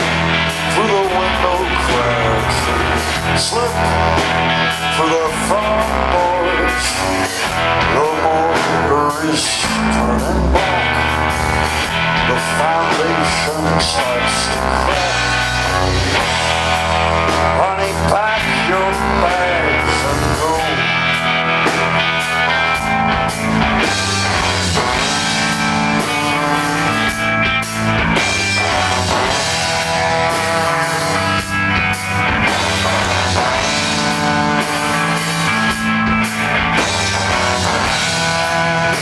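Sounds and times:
bass guitar: 0.0 - 39.0
drum kit: 0.0 - 39.0
electric guitar: 0.0 - 39.0.

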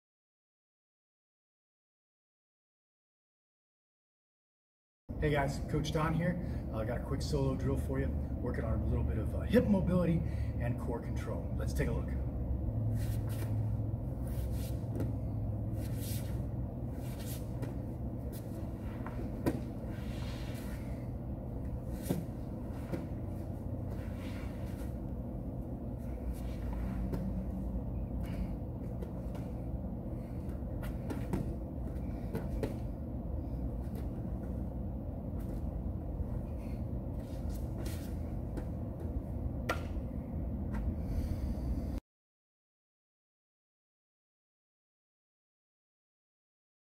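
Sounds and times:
low room rumble: 5.1 - 42.0.

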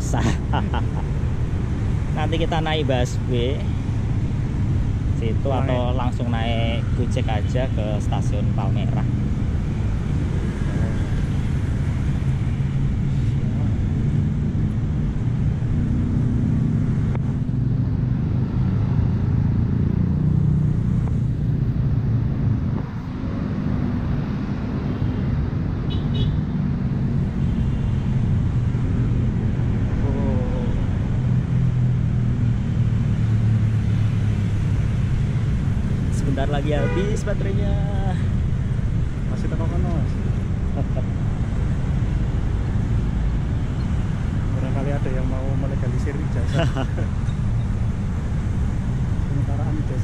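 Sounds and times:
road traffic hum: 0.0 - 50.0.

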